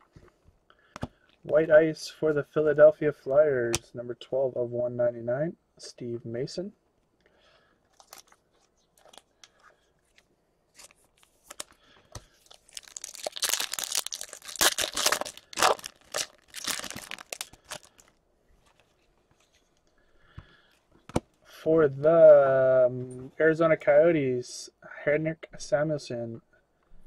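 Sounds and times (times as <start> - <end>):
plastic wrapper crinkling and tearing: 7.9 - 18.2.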